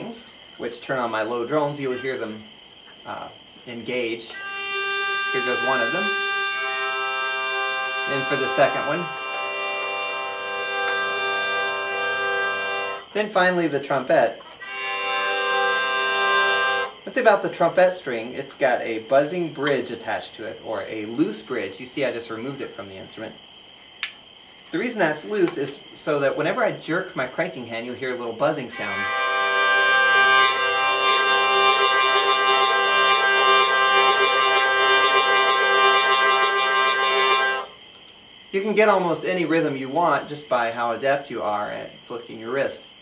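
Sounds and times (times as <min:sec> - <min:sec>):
hurdy-gurdy drone chord: 0:01.8 - 0:02.4, 0:04.3 - 0:13.1, 0:14.6 - 0:17.0, 0:28.7 - 0:37.8.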